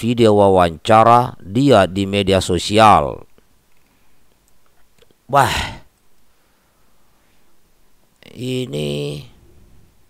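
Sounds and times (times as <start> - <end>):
man's short breathy voice sound: 5.3 - 5.9.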